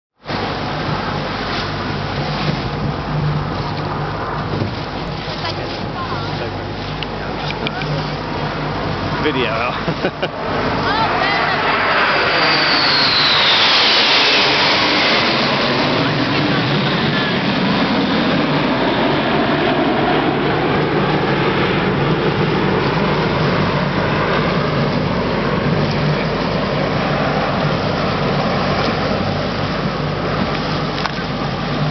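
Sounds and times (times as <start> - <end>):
jets flying past: 0.2 - 31.9.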